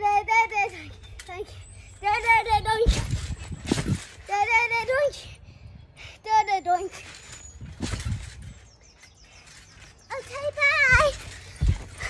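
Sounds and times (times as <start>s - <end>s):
feet thudding on trampoline: 2.0s - 5.2s, 6.6s - 12.0s.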